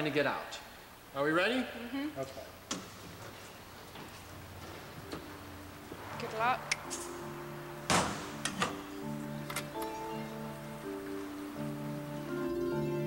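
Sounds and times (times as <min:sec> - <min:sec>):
background music: 0:04.2 - 0:13.0
steel safe door slamming: 0:06.0 - 0:09.9.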